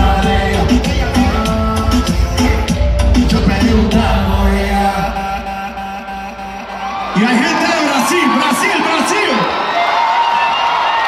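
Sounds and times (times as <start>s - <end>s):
live pop music: 0.0s - 9.5s.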